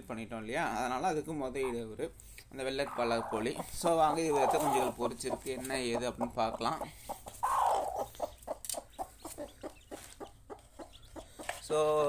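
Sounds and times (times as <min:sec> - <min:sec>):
hen clucking rapidly: 0:01.1 - 0:12.0
hen squawking: 0:01.6 - 0:01.9, 0:02.6 - 0:11.4.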